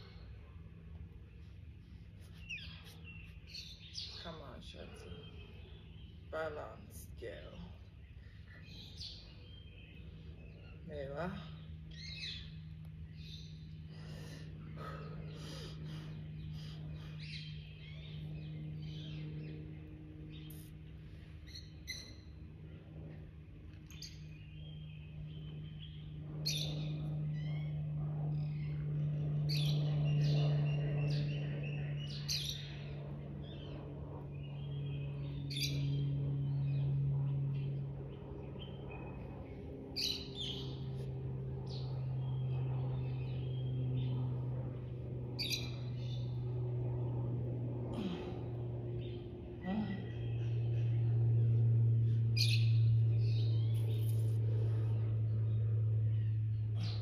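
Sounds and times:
songbirds chirping and trilling: 0:00.0 - 0:57.0
steady low hum: 0:00.0 - 0:57.0.

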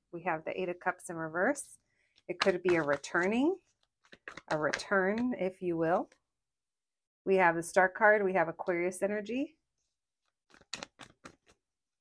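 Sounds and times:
cards being shuffled: 0:02.3 - 0:05.2, 0:10.2 - 0:11.8.

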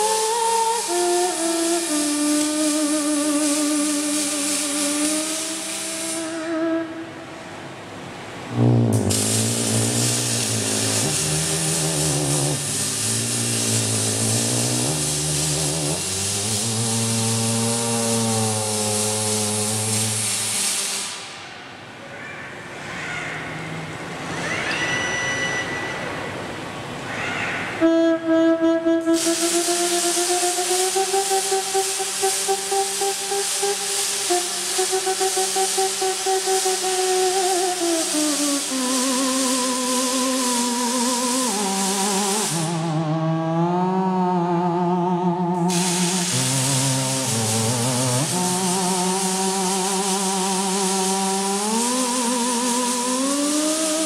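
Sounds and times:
arc welding hiss: 0:00.0 - 0:06.6, 0:08.6 - 0:21.6, 0:29.2 - 0:43.2, 0:45.6 - 0:54.0
theremin wavering notes: 0:34.3 - 0:49.7.

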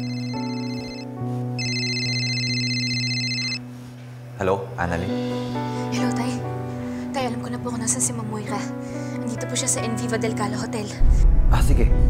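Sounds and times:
phone ringing with trilling ringtone: 0:00.0 - 0:03.7
background music score: 0:03.6 - 0:12.0.

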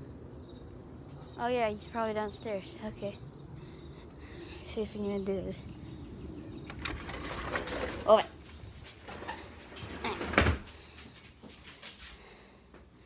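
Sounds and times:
door opening and shutting: 0:06.6 - 0:10.8.

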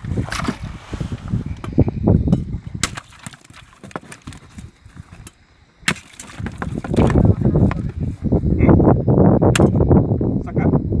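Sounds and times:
thumps against wooden boat: 0:05.9 - 0:08.0.

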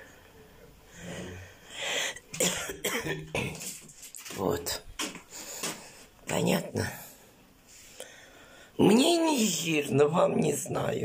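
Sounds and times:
woman coughing: 0:02.3 - 0:03.7.

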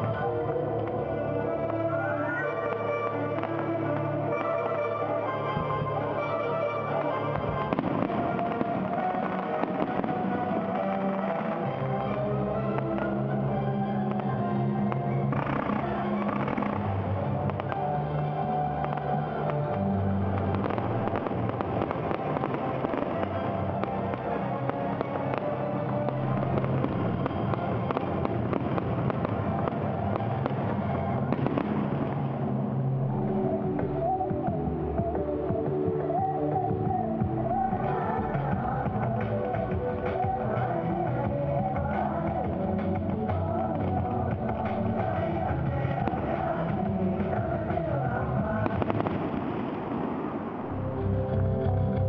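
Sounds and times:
fireworks bangs and crackles: 0:00.0 - 0:51.1
background music: 0:00.0 - 0:52.0.

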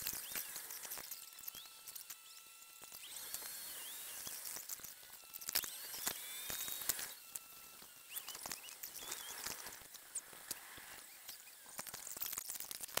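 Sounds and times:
faint high chirps: 0:00.0 - 0:11.7.

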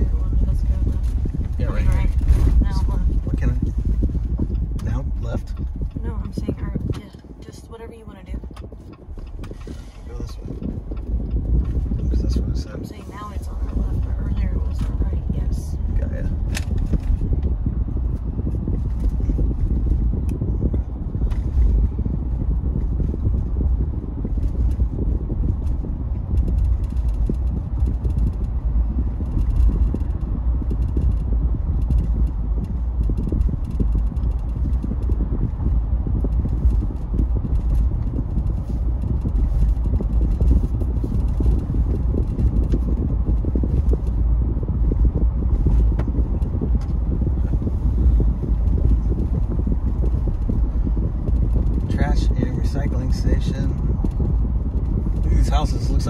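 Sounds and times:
car driving rumble from inside: 0:00.0 - 0:56.0.

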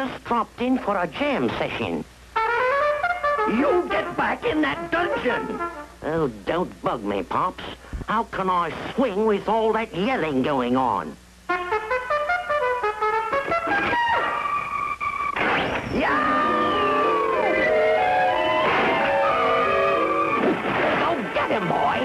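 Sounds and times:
jazz trumpet playing: 0:02.4 - 0:06.0, 0:11.5 - 0:15.0.

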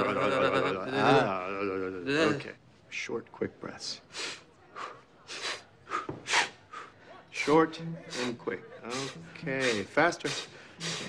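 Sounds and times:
man breathing rapidly: 0:04.1 - 0:11.0.

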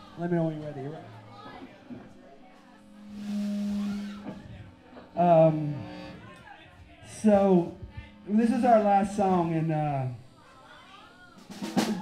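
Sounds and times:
snare drum roll: 0:11.5 - 0:12.0.

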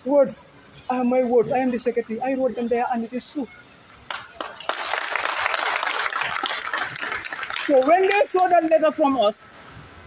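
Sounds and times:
crowd applauding: 0:04.1 - 0:08.8.

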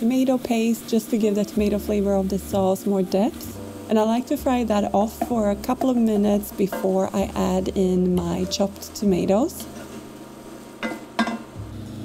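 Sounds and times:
vegetables sizzling: 0:00.0 - 0:12.0.

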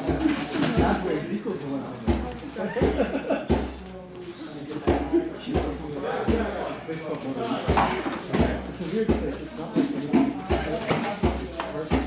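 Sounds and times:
low murmuring voices: 0:00.0 - 0:12.0.

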